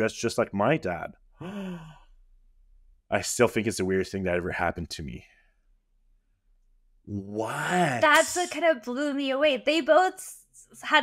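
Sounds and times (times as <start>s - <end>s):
person gasping: 1.4s - 2.1s, 7.4s - 8.5s.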